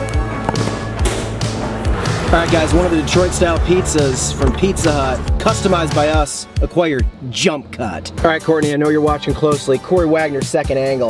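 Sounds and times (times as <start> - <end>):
music with steady drum beat: 0.0 - 7.1.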